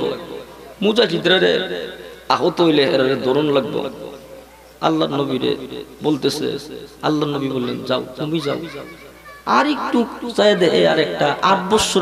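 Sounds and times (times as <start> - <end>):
man preaching through microphone: 0.0 - 12.0.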